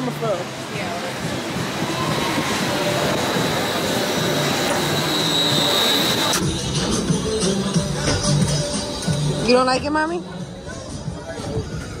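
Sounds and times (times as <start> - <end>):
steady rushing noise: 0.0 - 8.0
music: 5.5 - 12.0.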